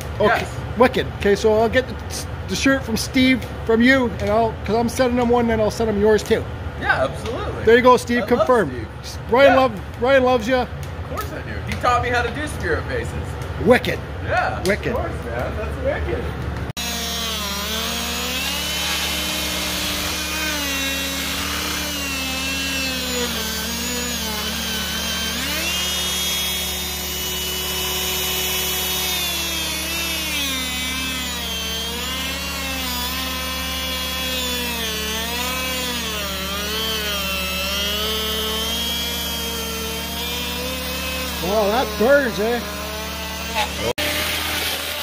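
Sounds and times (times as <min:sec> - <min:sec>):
die grinder whine carving wood: 0:16.6 - 0:45.0.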